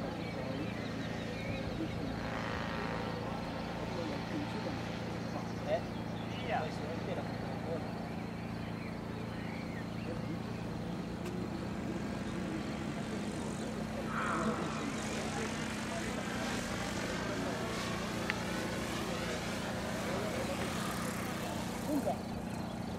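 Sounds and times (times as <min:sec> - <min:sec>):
model helicopter rotor drone: 0:00.0 - 0:22.9
high whine: 0:14.0 - 0:19.2.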